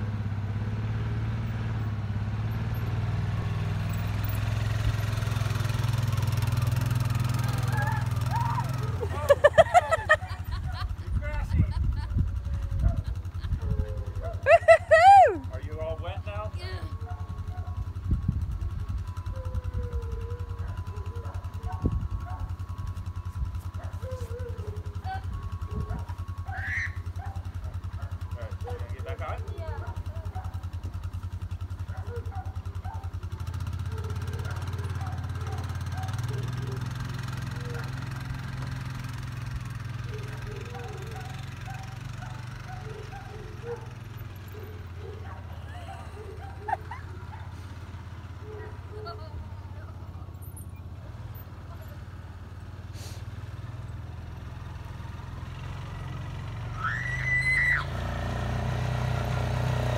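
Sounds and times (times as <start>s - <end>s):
atv engine idling and revving: 0.0s - 59.9s
loud high-pitched shout: 7.6s - 9.1s, 14.5s - 15.5s, 26.5s - 27.0s, 56.8s - 58.0s.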